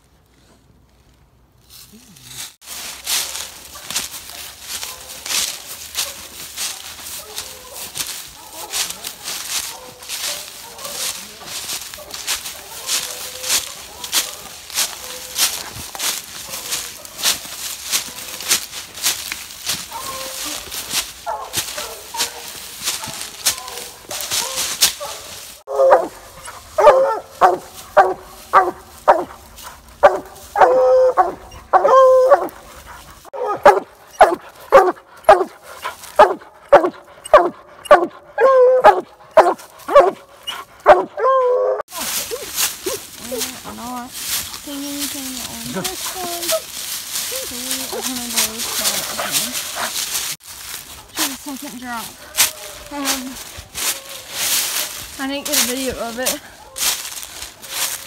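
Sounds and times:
footsteps crunching through dry leaves: 0.0 - 58.0
hound barking rapidly: 3.1 - 18.8, 19.6 - 41.8, 47.3 - 50.3.

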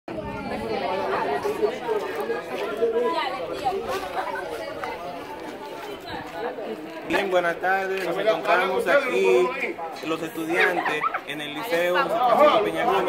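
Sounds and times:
teenagers chattering: 0.1 - 13.0.

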